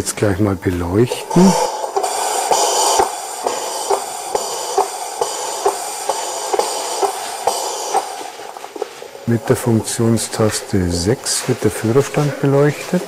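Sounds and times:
steam locomotive hiss: 0:00.0 - 0:13.0
regular knocking: 0:01.0 - 0:13.0.

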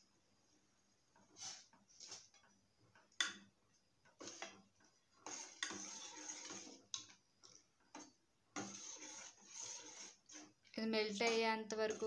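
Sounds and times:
metal spoon stirring in steel pot: 0:04.0 - 0:12.0.

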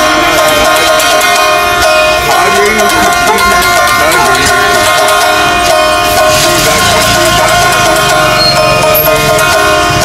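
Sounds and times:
elderly man folk singing: 0:00.0 - 0:10.0
stringed instrument held tone: 0:00.0 - 0:10.0.

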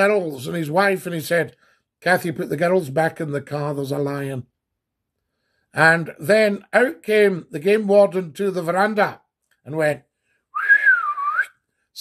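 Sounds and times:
man whistling a call: 0:10.5 - 0:11.6.

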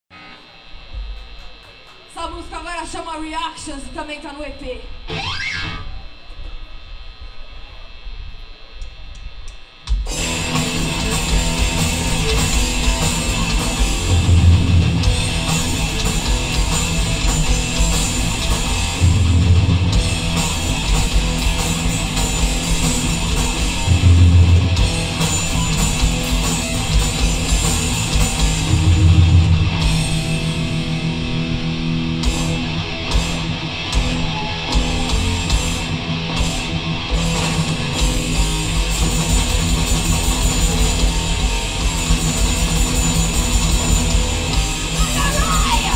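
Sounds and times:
distorted electric guitar: 0:00.1 - 0:07.0, 0:08.8 - 0:45.9
thrash metal band playing: 0:10.0 - 0:45.9.

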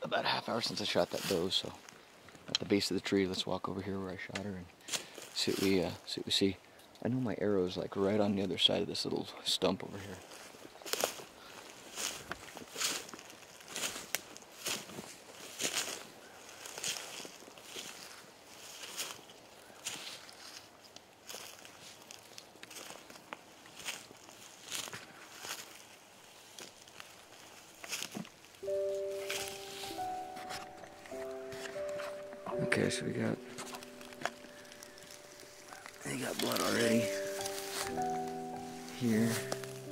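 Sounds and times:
footsteps through dry grass: 0:00.5 - 0:02.1, 0:04.8 - 0:06.2, 0:09.9 - 0:39.9
background music with held notes: 0:28.6 - 0:39.9.

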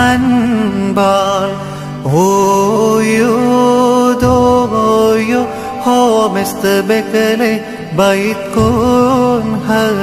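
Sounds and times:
man singing a hymn: 0:00.0 - 0:10.0.

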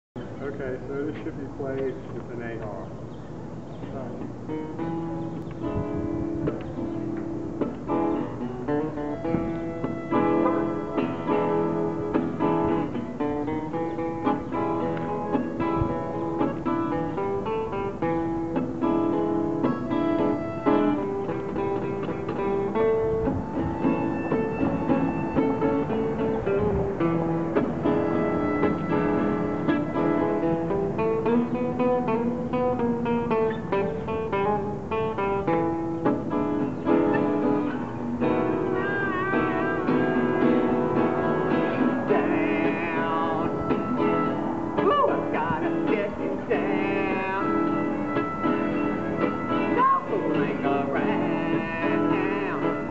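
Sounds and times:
acoustic guitar strumming: 0:04.2 - 0:52.9
harmonica playing: 0:08.1 - 0:14.4, 0:19.7 - 0:22.0, 0:23.0 - 0:26.3, 0:27.2 - 0:31.0, 0:38.2 - 0:45.1, 0:46.8 - 0:52.9.

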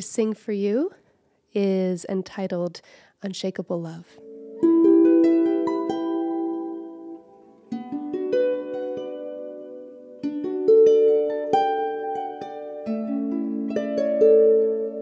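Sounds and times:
harp plucked notes and chords: 0:04.2 - 0:15.0.

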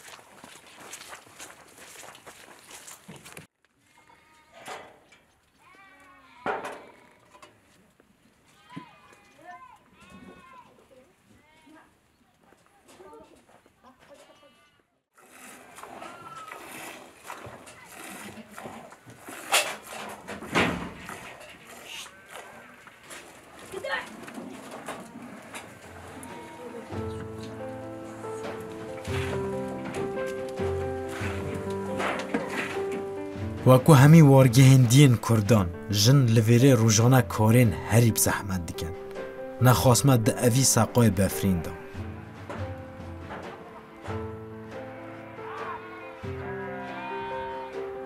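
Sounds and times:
livestock bleating: 0:03.9 - 0:04.7, 0:25.5 - 0:27.4, 0:44.9 - 0:48.0
milk squirting into metal pail: 0:15.3 - 0:23.6.

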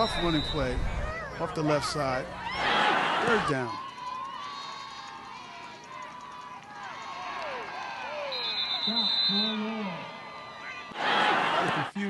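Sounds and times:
voices shouting and calling out: 0:00.0 - 0:12.0.

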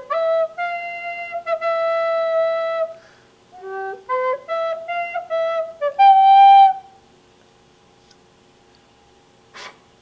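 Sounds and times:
wooden flute long note: 0:00.0 - 0:07.0.

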